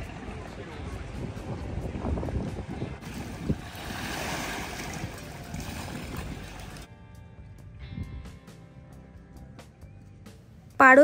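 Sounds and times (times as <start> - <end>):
wind buffeting microphone: 0.0 - 6.9
wave surging and washing in: 3.0 - 6.9.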